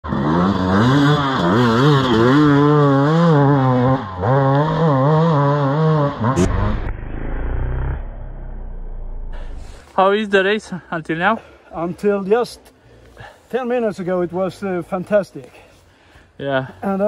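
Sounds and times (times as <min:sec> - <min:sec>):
dirt bike engine revving: 0:00.0 - 0:09.5
short sharp sound: 0:06.4 - 0:09.7.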